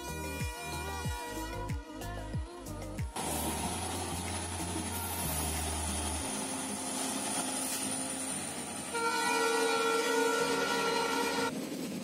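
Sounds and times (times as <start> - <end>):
train horn long blast: 0.0 - 2.1, 8.8 - 11.5
diesel locomotive passing: 3.1 - 12.0.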